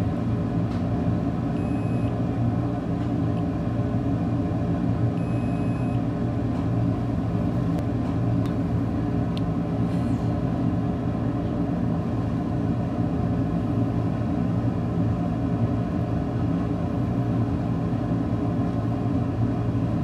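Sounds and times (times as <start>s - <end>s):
low machine hum: 0.0s - 20.0s.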